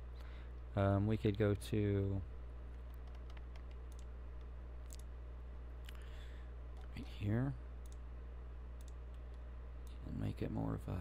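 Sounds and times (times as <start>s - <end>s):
low electrical hum: 0.0s - 11.0s
computer mouse clicks: 2.7s - 5.1s, 7.8s - 8.0s, 8.8s - 10.0s.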